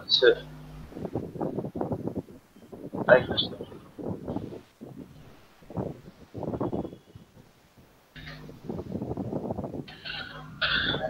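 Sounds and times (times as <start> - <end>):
low buzz: 0.0 - 11.0
muffled voice over video call: 3.1 - 3.9.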